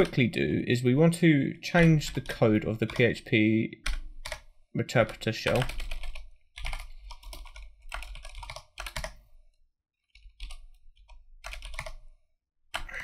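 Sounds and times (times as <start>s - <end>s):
typing on keyboard: 1.8s - 3.2s, 3.8s - 9.2s, 10.1s - 12.1s, 12.8s - 13.0s.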